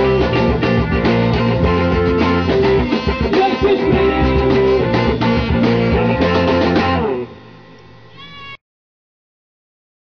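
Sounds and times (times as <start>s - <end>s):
surf rock guitars and drums: 0.0s - 7.4s
short high-pitched cry: 8.1s - 8.6s.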